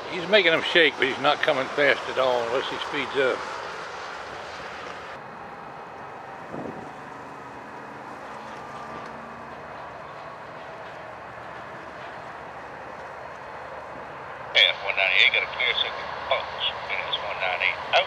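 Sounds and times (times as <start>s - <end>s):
distant freight train running: 0.0s - 18.0s
two-way radio voice: 0.1s - 3.4s, 14.6s - 18.0s.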